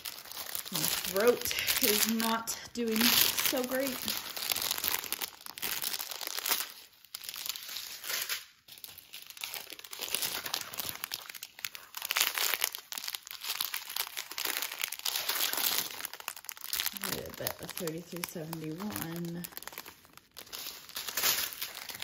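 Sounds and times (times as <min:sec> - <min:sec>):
plastic bags crinkling: 0:00.0 - 0:22.0.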